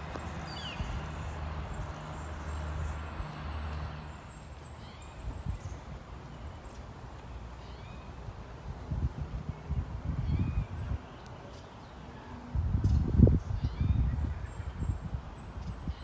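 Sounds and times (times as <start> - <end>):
wind rumbling on microphone: 0.0 - 3.6, 4.9 - 6.5, 7.9 - 16.0.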